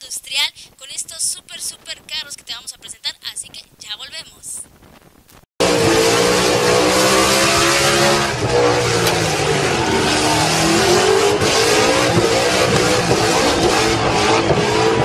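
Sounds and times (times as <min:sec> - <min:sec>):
car engine revving: 0:05.6 - 0:15.0.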